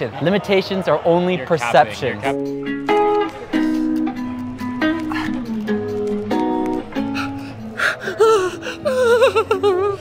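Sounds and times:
acoustic guitar music: 0:01.5 - 0:10.0
person gasping: 0:04.9 - 0:05.6, 0:06.9 - 0:09.2
person crying out: 0:07.2 - 0:10.0.

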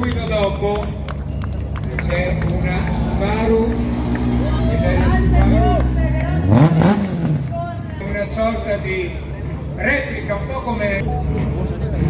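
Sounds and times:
crowd chatter: 0:00.0 - 0:12.0
rally car engine revving: 0:01.6 - 0:10.5.

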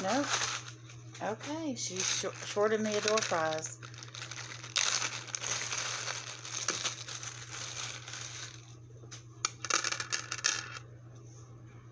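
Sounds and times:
plastic bag crinkling: 0:00.0 - 0:08.7.

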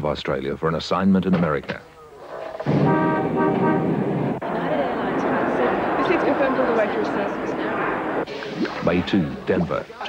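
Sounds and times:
city traffic noise: 0:02.4 - 0:10.0
car horns honking: 0:02.7 - 0:04.2
murmur of crowd: 0:04.4 - 0:10.0.

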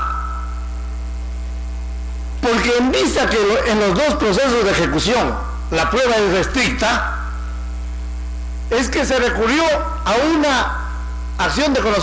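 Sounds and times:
mains hum: 0:00.0 - 0:12.0
echo of spoken word: 0:02.4 - 0:07.2, 0:11.4 - 0:12.0.

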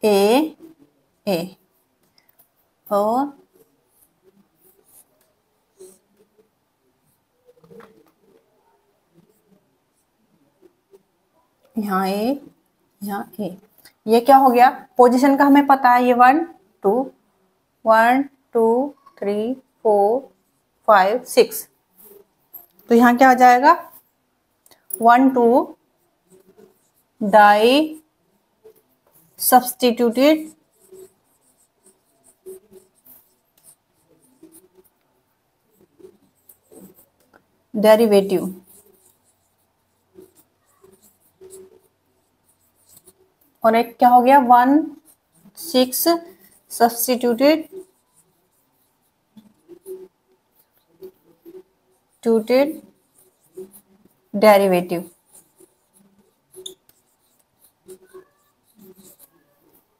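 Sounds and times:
marker squeaking on whiteboard: 0:00.2 - 0:17.1, 0:18.2 - 0:59.9.

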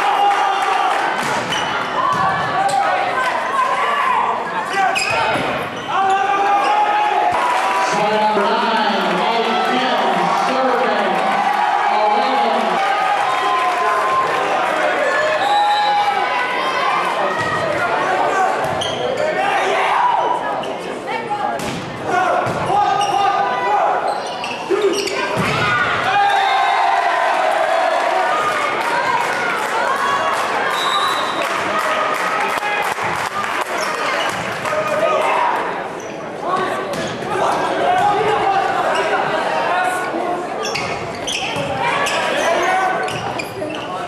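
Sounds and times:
crowd shouting and cheering: 0:00.0 - 0:44.0.

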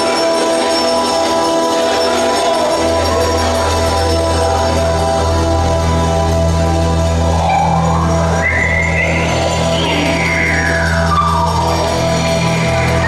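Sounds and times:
high sweeping tone: 0:07.0 - 0:13.0.

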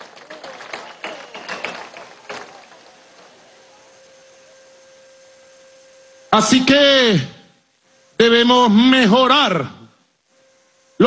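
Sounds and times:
faint steady hum: 0:00.0 - 0:11.0
low hiss: 0:00.0 - 0:11.0.

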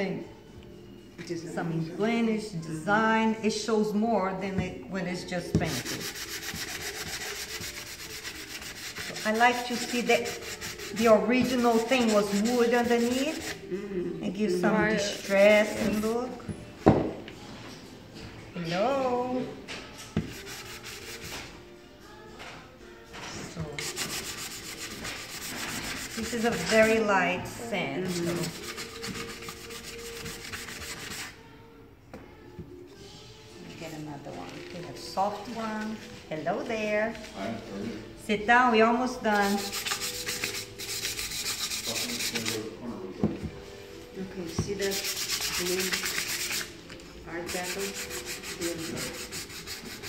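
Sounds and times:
sanding block rasping on wood: 0:05.7 - 0:13.6, 0:20.3 - 0:21.4, 0:23.8 - 0:27.0, 0:28.1 - 0:31.3, 0:39.4 - 0:42.6, 0:44.8 - 0:46.7, 0:47.5 - 0:50.0.

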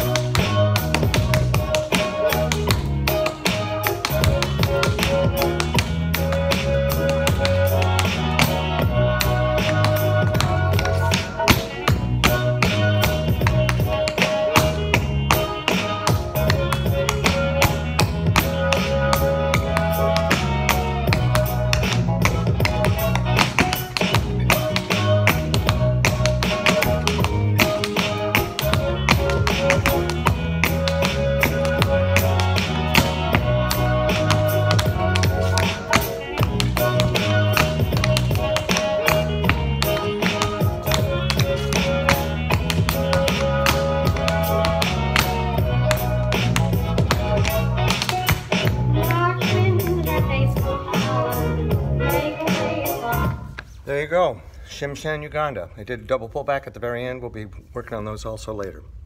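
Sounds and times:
recorded music with bass line: 0:00.0 - 0:53.6
tap shoes on wooden board: 0:21.1 - 0:45.3.

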